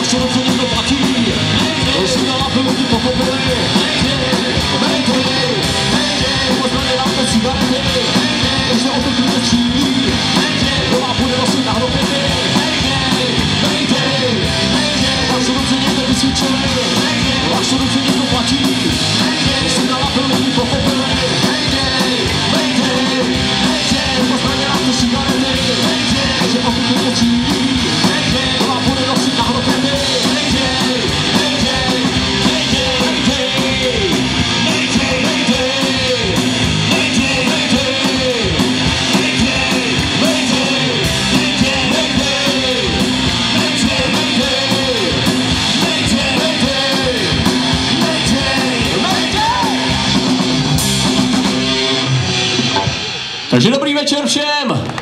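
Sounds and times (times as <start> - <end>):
man singing into a microphone: 0.0 - 50.0
bass guitar: 0.0 - 55.0
distorted electric guitars: 0.0 - 55.0
drums: 0.0 - 55.0.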